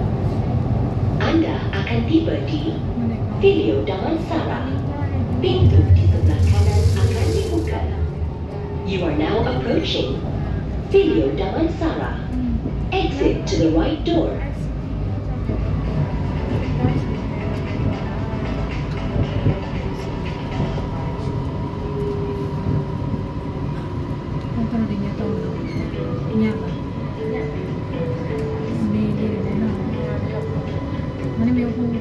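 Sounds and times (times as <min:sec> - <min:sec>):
train rumble: 0:00.0 - 0:32.0.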